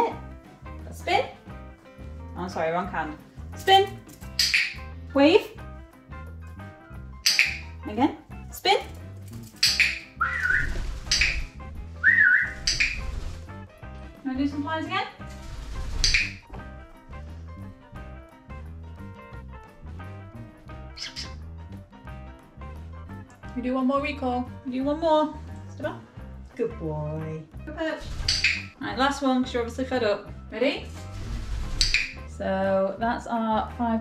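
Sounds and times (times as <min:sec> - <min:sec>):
background music with steady beat: 0:00.0 - 0:34.0
parrot calls: 0:09.6 - 0:13.1, 0:21.0 - 0:21.4, 0:28.2 - 0:28.7
parrot whistled notes: 0:09.6 - 0:13.1, 0:21.0 - 0:21.4.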